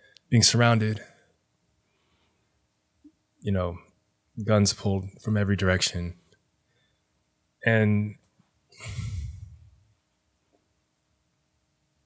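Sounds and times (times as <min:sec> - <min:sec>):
man sighing: 0:08.8 - 0:09.8.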